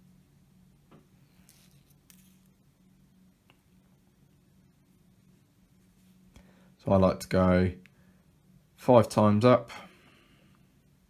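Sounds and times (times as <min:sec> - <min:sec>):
faint steady hum: 0:00.0 - 0:11.0
soft rustles of braid: 0:01.2 - 0:02.6.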